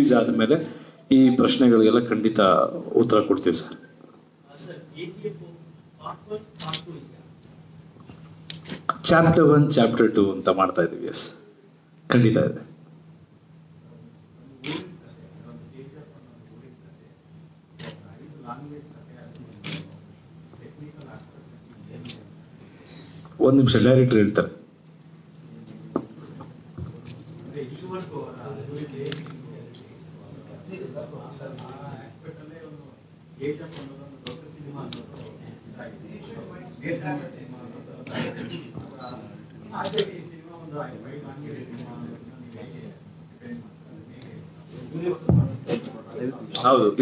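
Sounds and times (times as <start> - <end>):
people talking: 0.0 - 3.9, 25.6 - 47.0
low electrical hum: 0.0 - 47.0
camera shutter click: 14.6 - 14.9.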